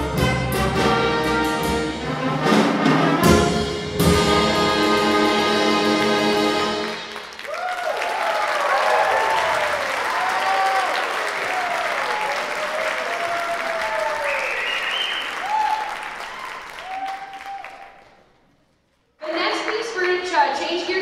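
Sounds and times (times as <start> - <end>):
audience applauding: 6.0 - 18.5
whoops and cheers: 7.4 - 18.1.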